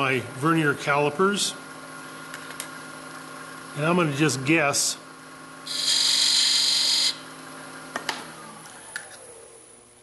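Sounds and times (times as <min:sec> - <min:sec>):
lathe motor humming: 0:05.1 - 0:09.8.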